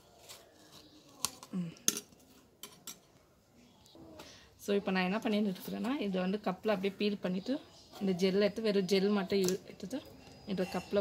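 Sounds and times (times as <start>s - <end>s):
metal spoon scraping a plate: 10.0s - 11.0s.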